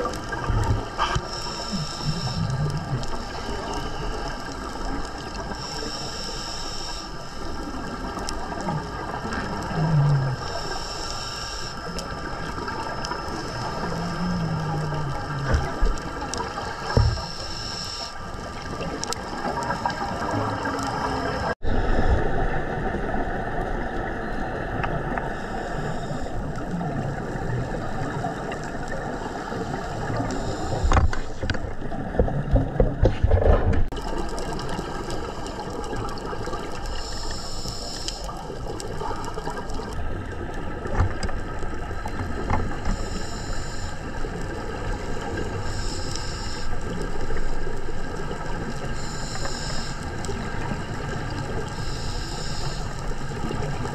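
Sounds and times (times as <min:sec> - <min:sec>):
exhaled air bubbling: 0:00.0 - 0:06.0, 0:06.8 - 0:11.1, 0:11.8 - 0:53.9
regulator breathing hiss: 0:00.9 - 0:08.0, 0:10.4 - 0:21.6, 0:25.2 - 0:26.6, 0:28.0 - 0:31.4, 0:36.7 - 0:39.8, 0:42.7 - 0:44.7, 0:45.3 - 0:47.3, 0:48.8 - 0:53.7.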